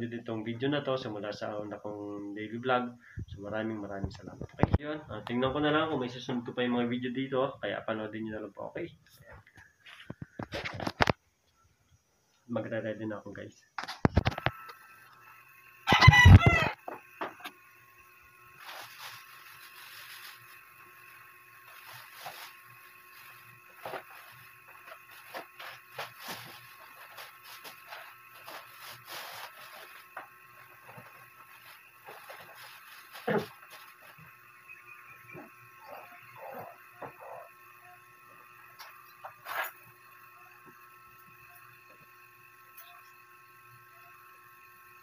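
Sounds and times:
rooster crowing: 15.8 - 17.0.

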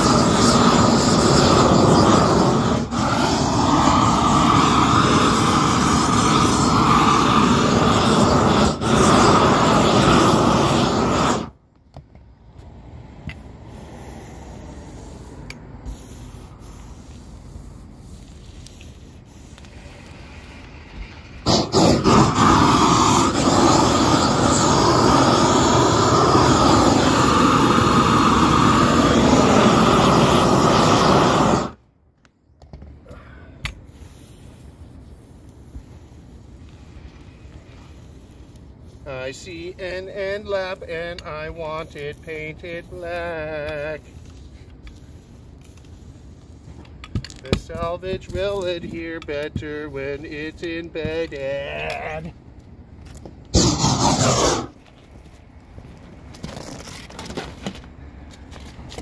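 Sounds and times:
roofing torch roaring: 0.0 - 11.6, 19.2 - 31.9, 36.2 - 59.0.

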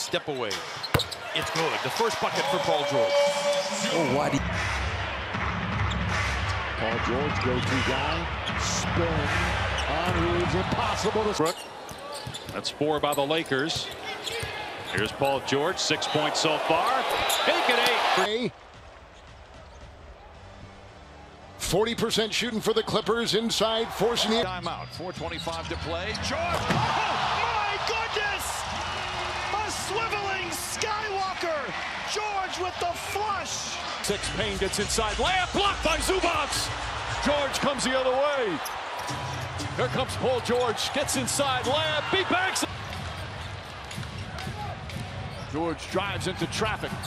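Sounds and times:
quiet arena ambience: 0.0 - 47.0.

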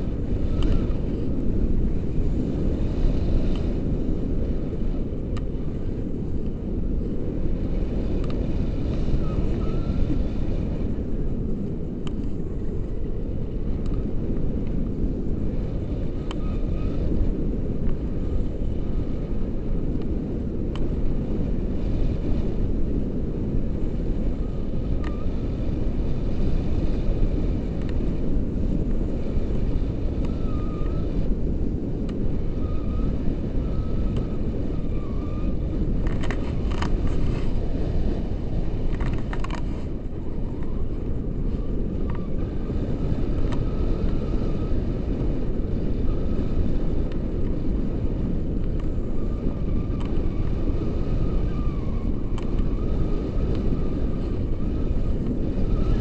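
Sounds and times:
wind rushing on microphone: 0.0 - 56.0.

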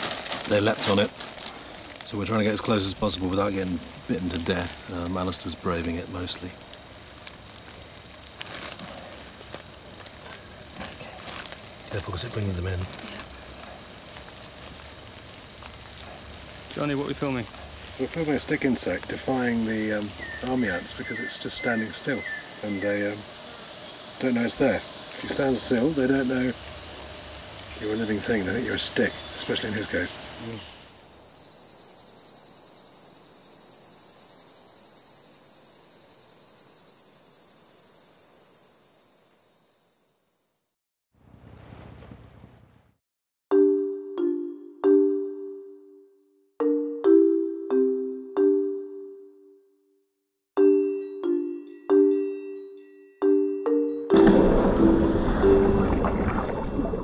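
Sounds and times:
insect chorus buzzing: 0.0 - 40.7
low sound: 54.1 - 57.0.

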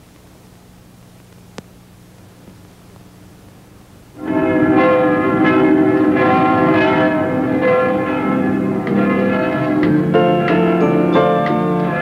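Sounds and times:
church bells pealing: 4.2 - 12.0.

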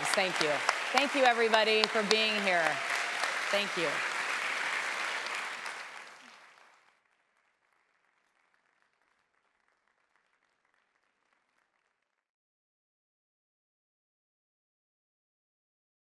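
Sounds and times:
audience applauding: 0.0 - 12.1.

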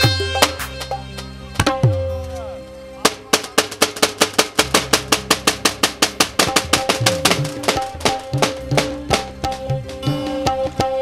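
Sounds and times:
tabla played in fast strokes: 0.0 - 2.1, 3.1 - 11.0
held melodic notes: 0.0 - 11.0.

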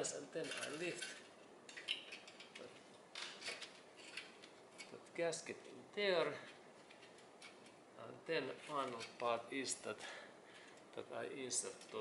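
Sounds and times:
metal scrape: 0.4 - 1.4.

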